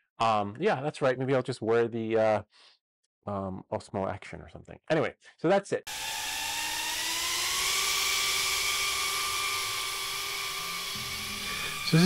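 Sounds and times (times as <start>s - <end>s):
drone propellers whining: 5.9s - 12.0s.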